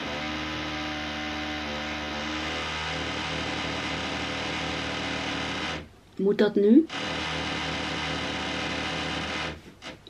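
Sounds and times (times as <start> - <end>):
appliance motor humming: 0.0 - 5.9, 6.9 - 10.0.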